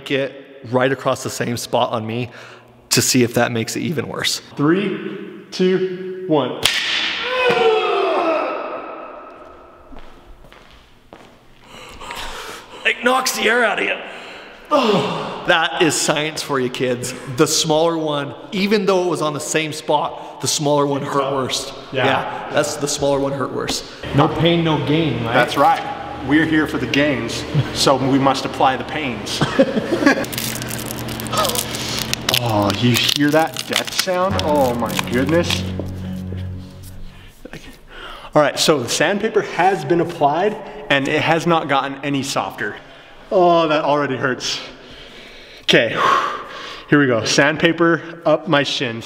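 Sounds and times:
man groaning in pain: 7.2 - 8.8, 14.7 - 15.4.

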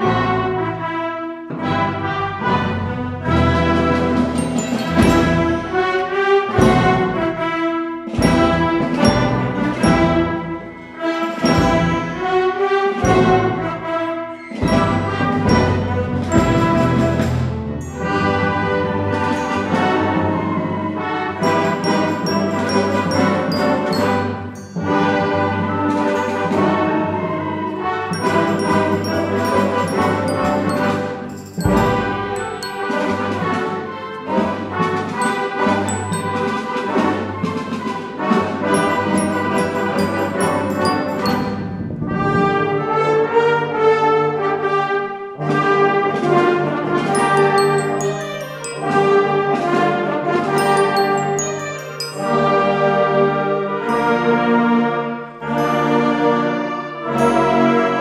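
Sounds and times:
orchestra playing brass-heavy music: 0.0 - 58.0.

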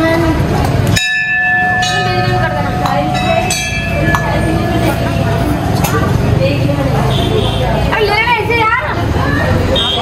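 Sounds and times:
temple bell ringing: 0.9 - 7.2.

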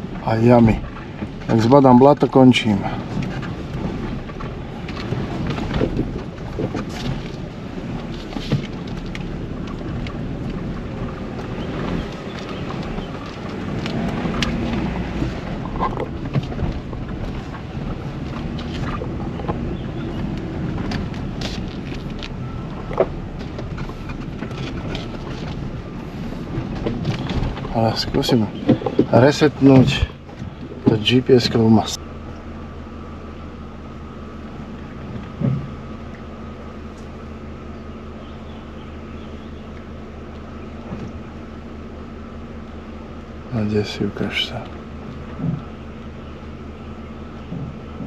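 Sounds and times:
car engine and tyre rumble: 0.0 - 48.0
car knocking and rattling: 0.0 - 48.0.

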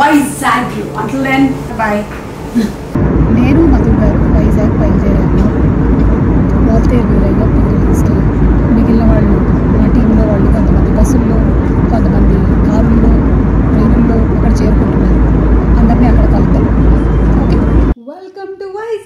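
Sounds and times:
jet engines and airflow rumble: 0.0 - 18.0.

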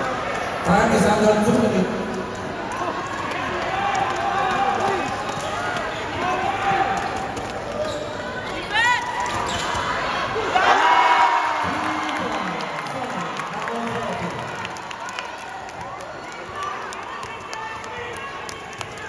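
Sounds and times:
sneakers squeaking on floor: 7.8 - 8.6, 9.3 - 10.0
crowd shouting: 8.7 - 12.7.

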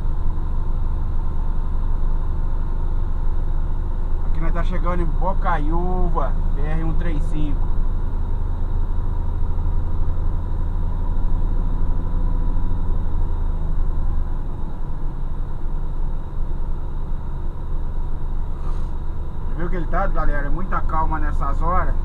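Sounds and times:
truck engine drone from cab: 0.0 - 22.0.

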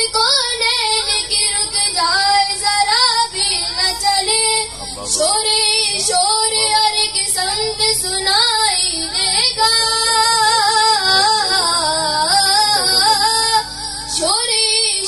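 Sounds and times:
boy singing into a microphone: 0.0 - 15.0.

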